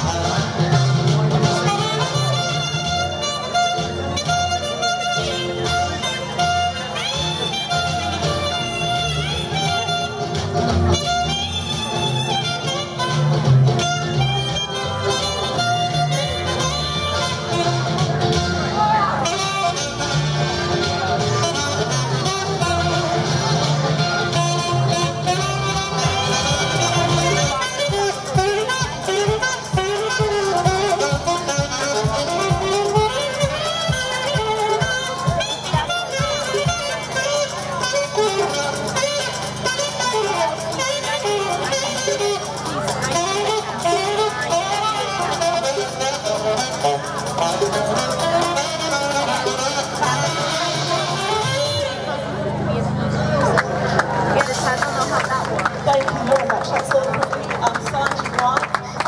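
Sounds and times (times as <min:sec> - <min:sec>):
saxophone melody: 0:00.0 - 0:56.6
backing track with bass line: 0:00.0 - 0:59.0
sustained low bass: 0:13.2 - 0:29.0.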